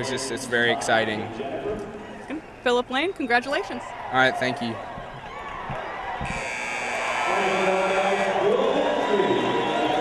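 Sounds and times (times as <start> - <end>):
crowd noise: 0.0 - 10.0
arena buzzer: 6.2 - 8.7.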